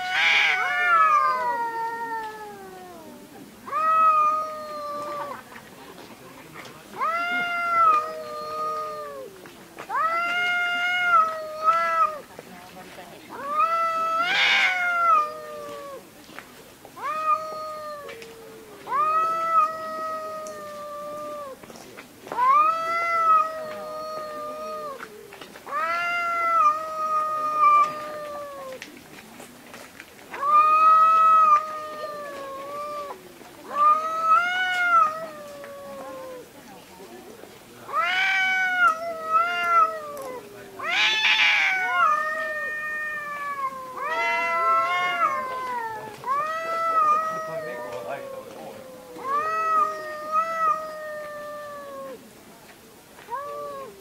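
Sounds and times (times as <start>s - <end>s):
cats yowling: 0.0s - 5.5s, 7.0s - 12.3s, 13.3s - 16.1s, 17.0s - 21.6s, 22.3s - 28.9s, 30.3s - 36.5s, 37.9s - 52.3s, 53.2s - 54.0s.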